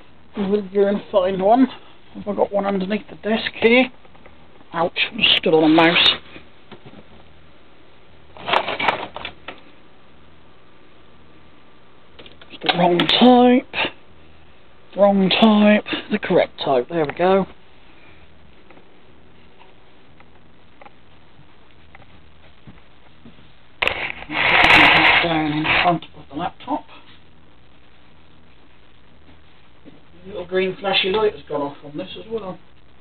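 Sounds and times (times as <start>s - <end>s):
steady low hum: 0.0s - 33.0s
plastic bag rustling with cables clicking: 8.4s - 9.6s.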